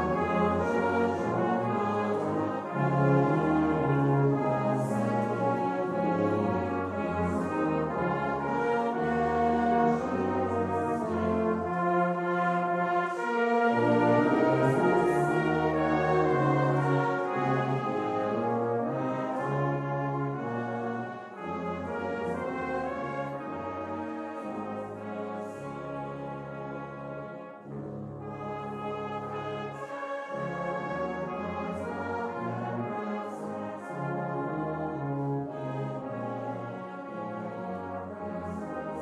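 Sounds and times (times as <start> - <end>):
brass band playing hymn: 0.0 - 39.0.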